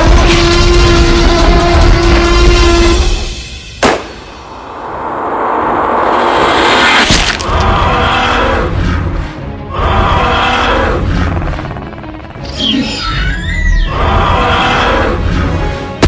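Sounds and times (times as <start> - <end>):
dramatic music: 0.0 - 16.0
rifle shot: 3.8 - 4.4
sharp crack: 3.8 - 5.0, 6.8 - 7.6.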